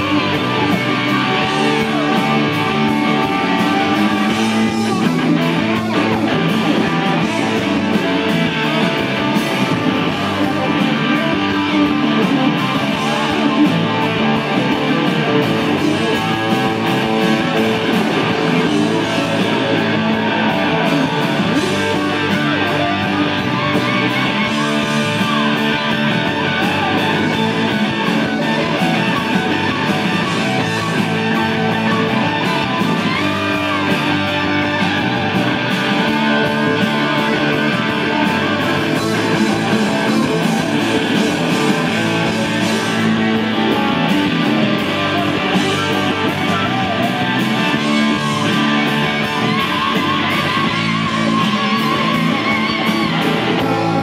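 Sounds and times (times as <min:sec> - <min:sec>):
lead guitar bending notes: 0:00.0 - 0:54.0
live rock band playing: 0:00.0 - 0:54.0.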